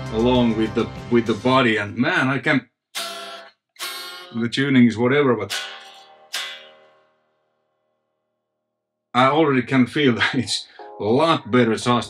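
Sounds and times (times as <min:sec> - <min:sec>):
electric guitar chord strummed: 0:03.0 - 0:04.4, 0:05.5 - 0:07.1.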